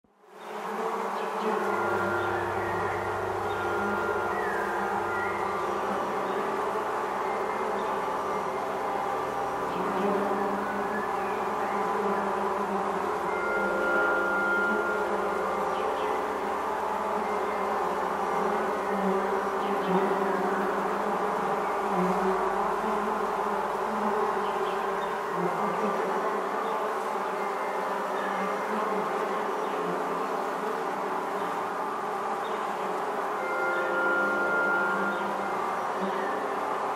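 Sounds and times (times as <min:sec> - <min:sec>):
bee swarm buzzing: 0:00.4 - 0:36.9
low steady tones: 0:00.4 - 0:36.9.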